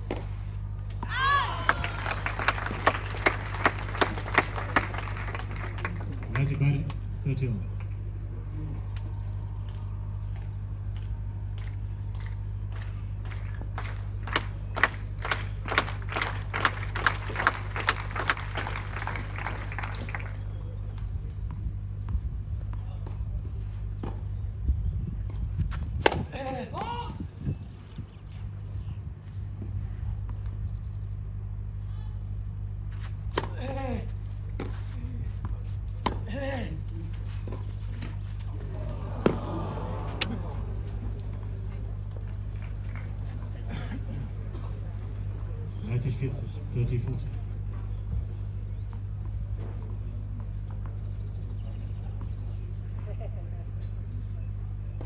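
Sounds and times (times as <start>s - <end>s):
crowd exclaiming oh: 1.0s - 2.8s, 38.6s - 41.0s
spectators applauding: 1.3s - 6.8s, 11.6s - 20.5s
tennis ball strikes: 26.0s - 26.3s, 36.0s - 36.3s, 38.8s - 40.5s.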